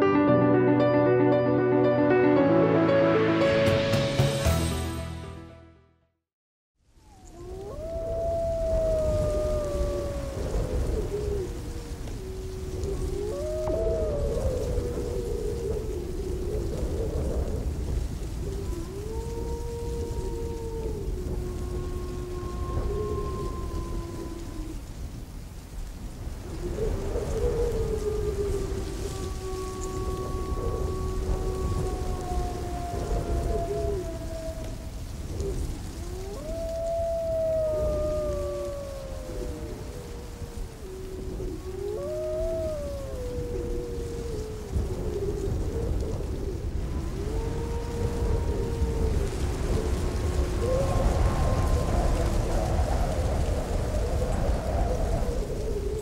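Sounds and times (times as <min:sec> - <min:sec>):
wolves howling: 0:07.0 - 0:25.2, 0:26.2 - 0:56.0.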